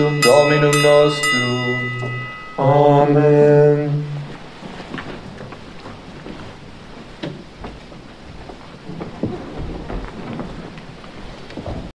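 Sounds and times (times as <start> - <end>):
rustling: 4.2 - 11.9.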